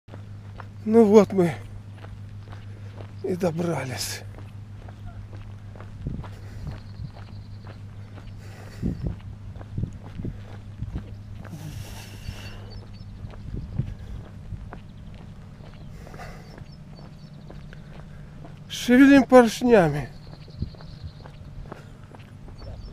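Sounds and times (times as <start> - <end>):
footsteps on gravel: 0.1 - 22.9
low hum: 0.1 - 22.9.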